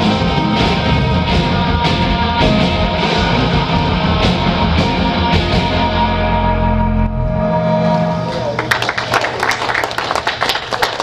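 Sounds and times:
live rock band: 0.0 - 9.0.

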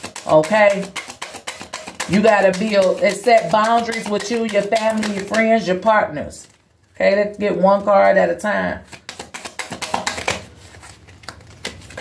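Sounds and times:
cards being shuffled: 8.8 - 12.0.

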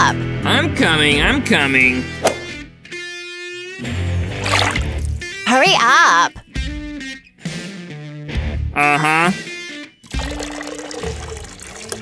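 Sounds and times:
background music: 0.0 - 12.0
water pouring into basin: 4.4 - 5.2, 10.0 - 12.0.

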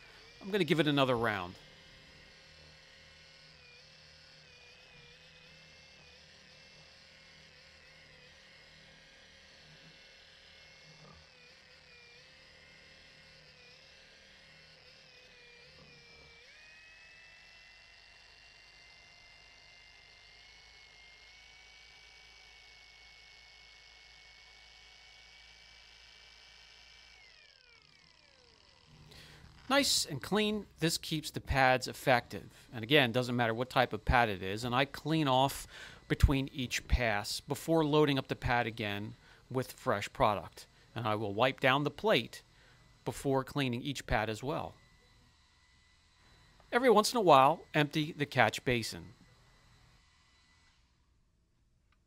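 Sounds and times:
faint polisher whine: 0.0 - 52.0.

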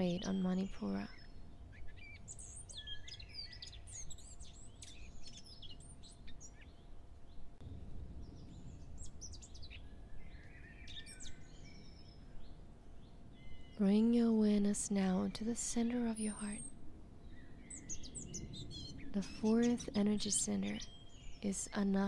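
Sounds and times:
birds chirping and trilling: 0.0 - 7.6, 8.2 - 22.0
faint steady hum: 0.0 - 22.0.

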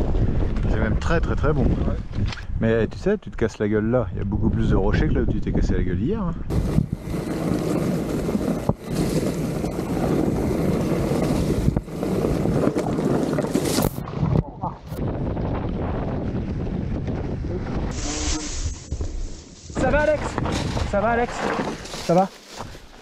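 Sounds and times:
wind noise on microphone: 0.0 - 22.0
tyres rattling over rocky trail: 6.5 - 14.0, 18.6 - 23.0
bike crash: 18.3 - 22.8.

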